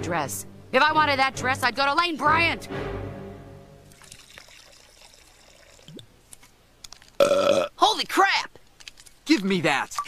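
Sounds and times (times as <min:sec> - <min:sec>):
person drinking from can: 0:03.9 - 0:06.1.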